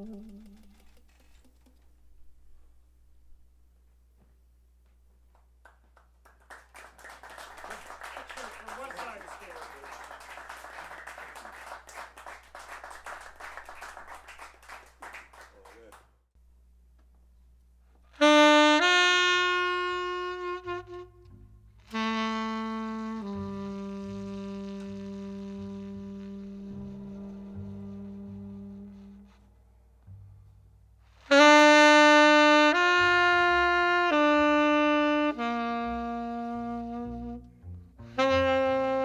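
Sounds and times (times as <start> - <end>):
audience applause: 5.7 - 16.0
tenor saxophone long low note: 18.2 - 29.5, 31.3 - 39.0.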